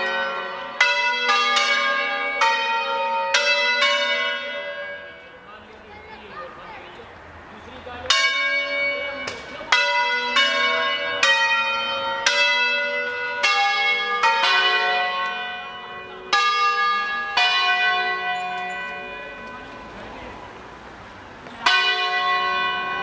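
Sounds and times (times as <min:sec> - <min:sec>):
church bells ringing: 0:00.0 - 0:07.0, 0:07.6 - 0:20.6, 0:21.5 - 0:23.0.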